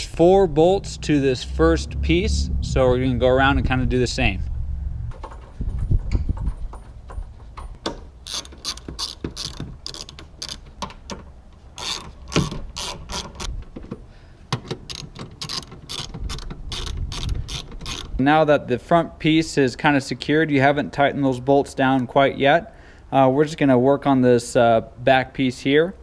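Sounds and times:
ratchet wrench clicking: 7.6s - 11.2s, 11.8s - 13.5s, 14.9s - 18.1s.

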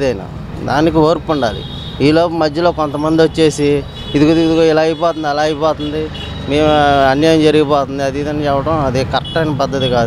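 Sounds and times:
man talking: 0.0s - 10.0s
street traffic noise: 0.0s - 10.0s.

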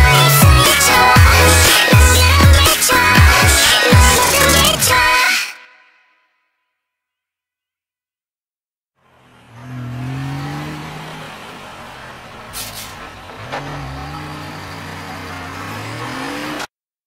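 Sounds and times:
car engine revving: 0.0s - 4.9s, 9.0s - 16.7s
short hiss: 12.5s - 13.0s.

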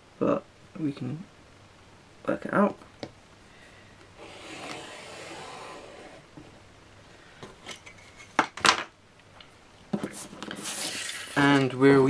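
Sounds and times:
pencil scratching along ruler: 4.2s - 6.3s.

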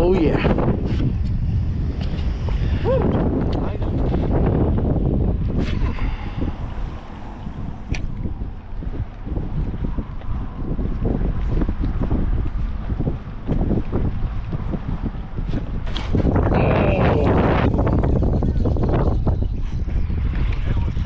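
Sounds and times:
wind rumbling on microphone: 0.0s - 21.0s
water lapping against boat hull: 0.4s - 21.0s.

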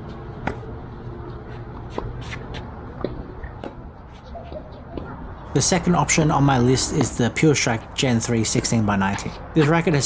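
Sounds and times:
racquet hitting tennis ball: 0.4s - 0.7s
clicks and scrapes on court: 1.4s - 5.1s.

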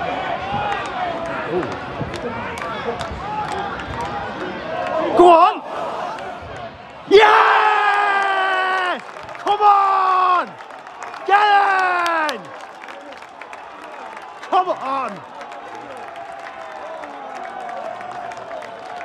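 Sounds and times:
man yelling in celebration: 7.1s - 10.6s, 11.2s - 12.5s.

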